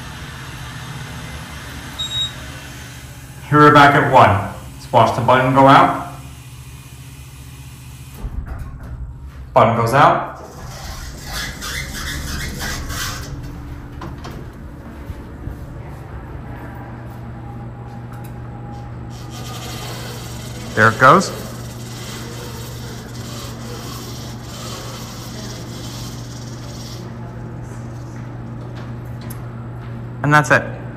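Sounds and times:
elevator low hum: 0.0s - 30.9s
elevator doors sliding closed: 10.4s - 16.6s.

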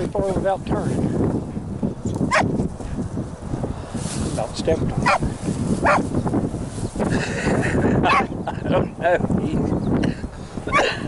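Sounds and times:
wind rumbling on microphone: 0.0s - 11.0s
brush rustling: 3.9s - 7.1s
dog baying: 5.8s - 6.0s.

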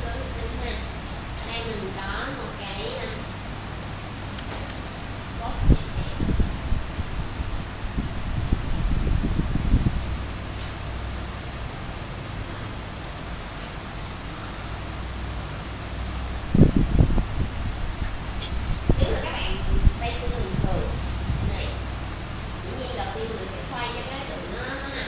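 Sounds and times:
low background hum: 0.0s - 25.0s.

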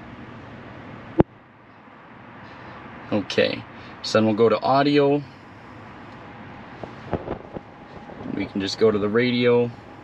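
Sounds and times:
ventilation fan hissing: 0.0s - 10.0s.

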